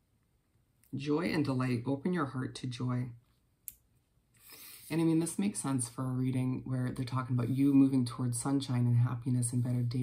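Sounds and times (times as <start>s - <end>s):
person speaking: 0.8s - 3.3s, 4.5s - 10.0s.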